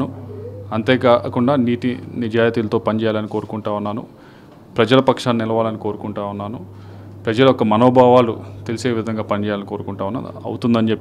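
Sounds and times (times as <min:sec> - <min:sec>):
man speaking: 0:00.0 - 0:04.2, 0:04.8 - 0:11.0
faint wavering low hum: 0:00.0 - 0:11.0.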